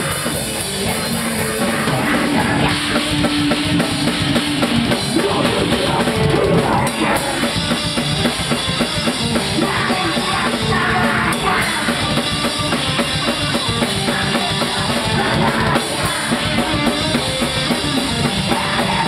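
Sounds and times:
drum kit pounding: 0.0s - 19.0s
heavy rock band playing: 0.0s - 19.0s.

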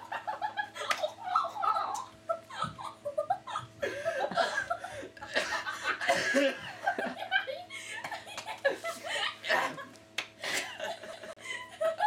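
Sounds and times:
boy and girl laughing: 0.0s - 12.0s.

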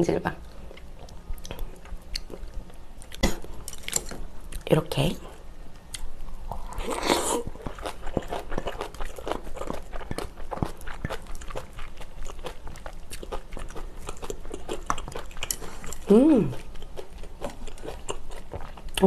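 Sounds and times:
chewing with wet mouth clicks: 0.5s - 4.6s, 5.9s - 19.0s.

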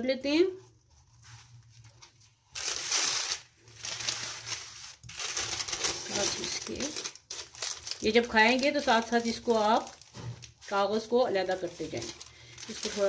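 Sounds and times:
paper crinkling and rustling: 0.6s - 13.0s.

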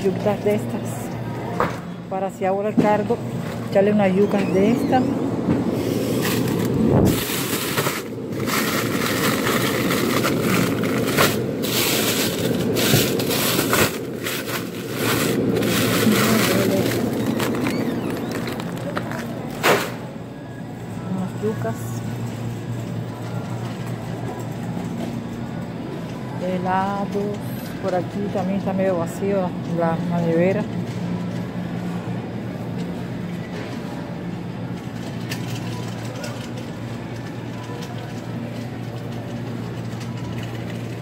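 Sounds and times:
supermarket background: 0.0s - 41.0s
plastic bags crinkling: 6.0s - 19.5s.

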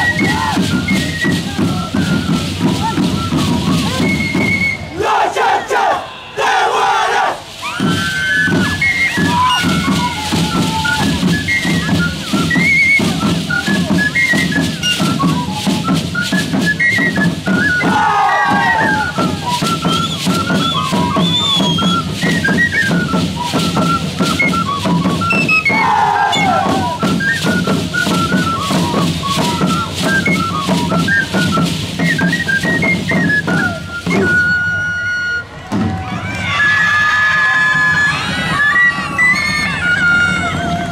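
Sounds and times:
steady drumming: 0.0s - 5.8s, 7.2s - 34.6s
high quick flute melody: 0.0s - 40.9s
dancers shouting: 4.9s - 7.8s, 17.9s - 19.4s, 25.7s - 26.9s.

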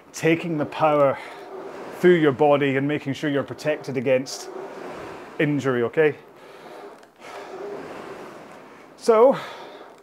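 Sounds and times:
rowing machine flywheel whooshing: 0.0s - 10.0s.

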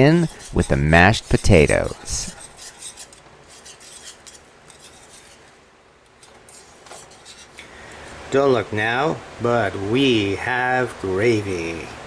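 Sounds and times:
whisk scraping against a skillet: 0.0s - 5.5s, 6.2s - 8.3s.

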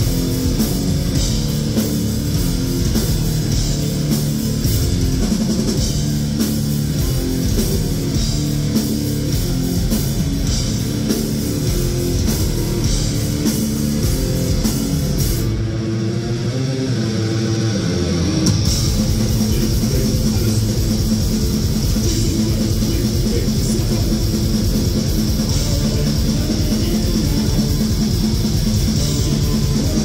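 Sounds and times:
fast dense drumming: 0.0s - 16.5s, 17.8s - 30.0s
bass guitar: 0.0s - 30.0s
distorted electric guitars: 0.0s - 30.0s.

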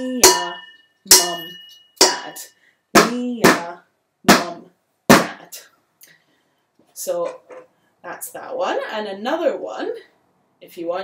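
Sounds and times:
wooden spoon striking metal pan: 0.0s - 2.4s
person speaking: 6.9s - 10.0s.

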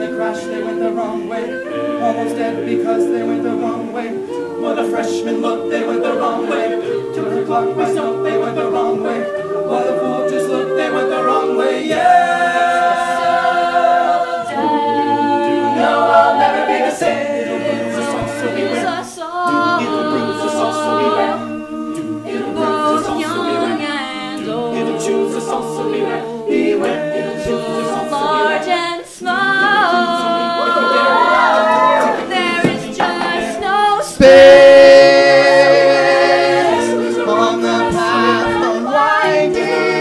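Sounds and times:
a cappella group singing: 0.0s - 40.0s.

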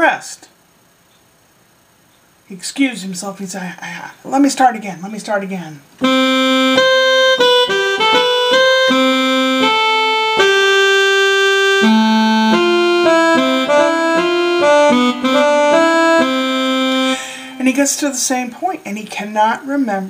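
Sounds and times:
electronic keyboard slow melody: 6.0s - 17.7s.

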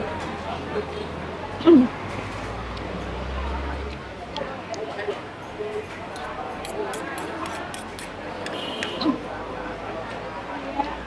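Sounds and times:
background chatter: 0.0s - 11.0s
cutlery clinking on a plate: 6.2s - 9.0s.

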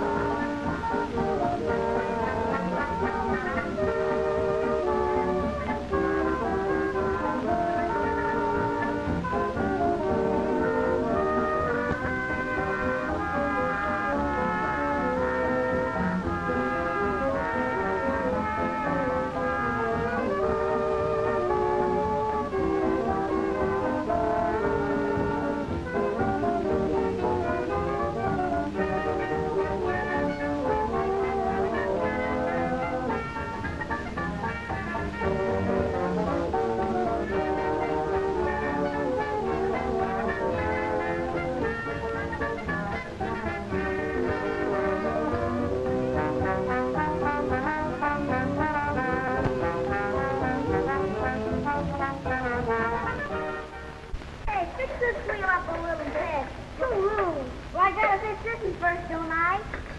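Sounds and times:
orchestral music with brass: 0.0s - 54.2s.

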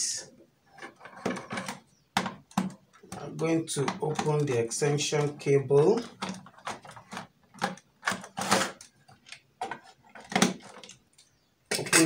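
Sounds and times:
plastic parts clicking and knocking: 0.7s - 12.0s.

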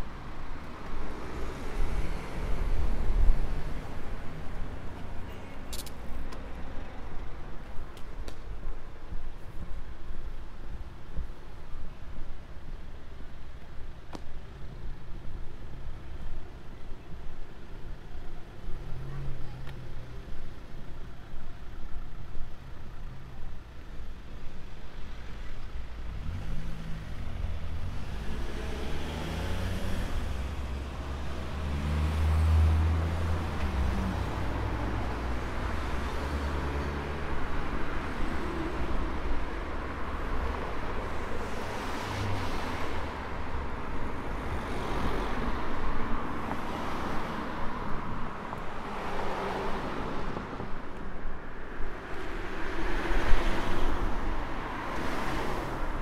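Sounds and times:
cars passing on road: 0.0s - 56.0s.

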